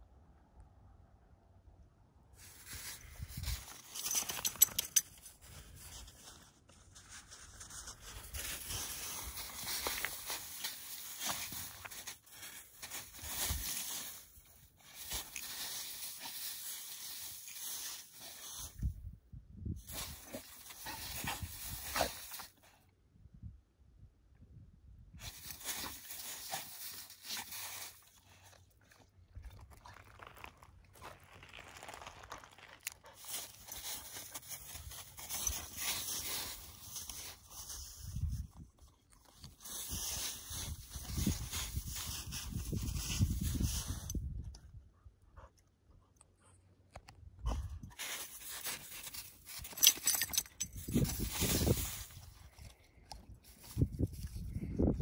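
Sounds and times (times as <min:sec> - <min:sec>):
dog rolling in wet snow: 0:08.4 - 0:18.5.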